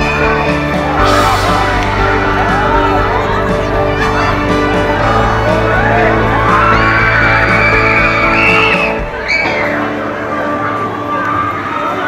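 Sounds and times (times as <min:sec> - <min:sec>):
music with held notes: 0:00.0 - 0:12.0
riders screaming and whooping: 0:05.5 - 0:10.0.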